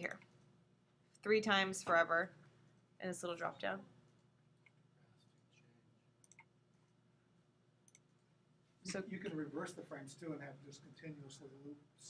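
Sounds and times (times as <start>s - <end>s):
computer mouse clicks: 6.2s - 6.5s, 7.8s - 8.2s.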